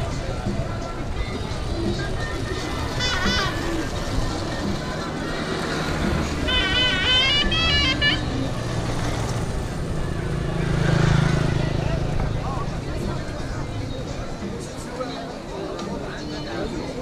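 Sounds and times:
people talking: 0.0 - 17.0
vehicle engine passing: 2.4 - 14.6
high wavering melody: 6.0 - 9.0.

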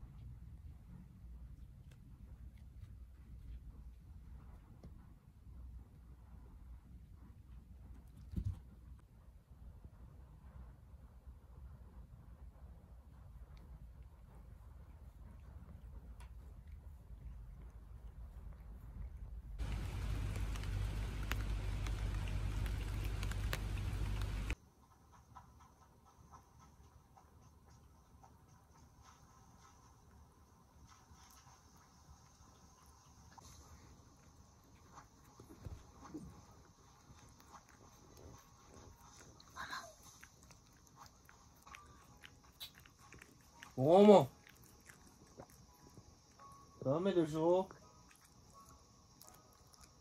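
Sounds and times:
dog licking: 14.9 - 24.6, 30.8 - 46.5, 47.6 - 50.0
heavy rain pouring: 19.6 - 24.6.

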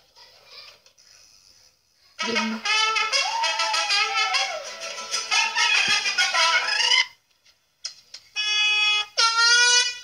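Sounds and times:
mariachi trumpets and guitars: 2.2 - 7.2, 8.4 - 10.0.

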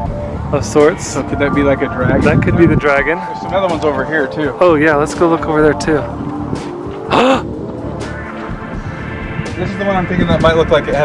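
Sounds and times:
faint background music: 0.0 - 11.0
steady low rumble: 0.0 - 11.0
person exclaiming: 7.1 - 7.5.

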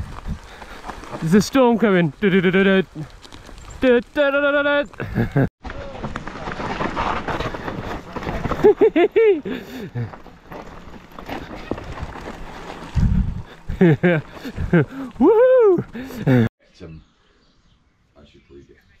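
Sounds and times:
bike tyres crunching over stones: 0.0 - 16.5
bike rattling over bumps: 5.0 - 16.5.

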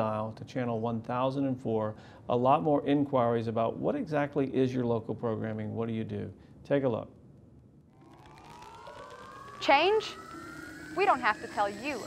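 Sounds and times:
faint electronic rising tone: 7.9 - 12.0.

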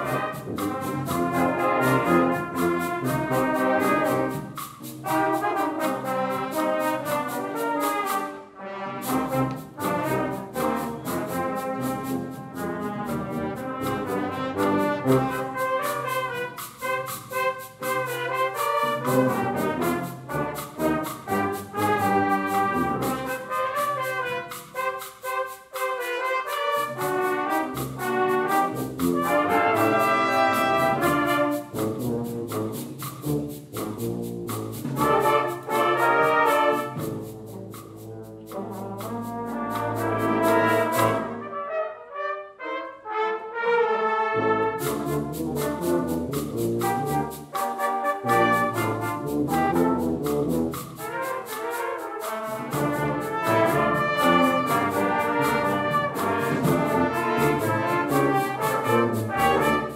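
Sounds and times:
brass band playing a tango: 0.0 - 59.9.

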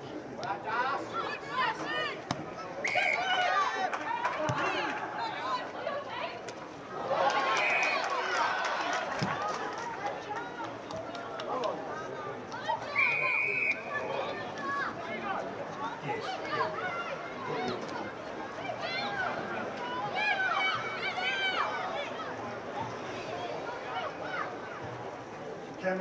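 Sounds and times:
people calling and shouting: 0.0 - 26.0
whistle blasts: 13.0 - 13.9.

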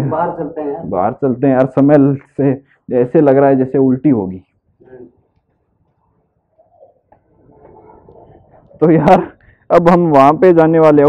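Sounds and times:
pigeon cooing: 6.5 - 8.8.

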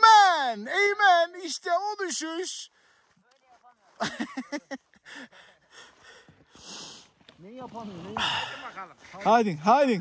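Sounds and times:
person breathing hard: 5.0 - 7.2, 8.2 - 8.8.

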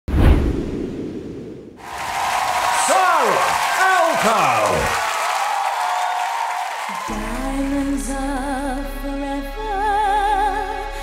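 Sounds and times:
arena audience noise: 1.8 - 7.7.

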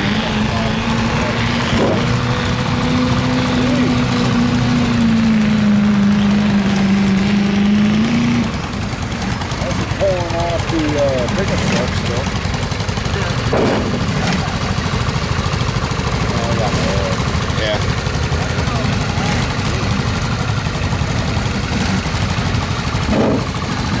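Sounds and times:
small tractor engine putter: 0.0 - 24.0.

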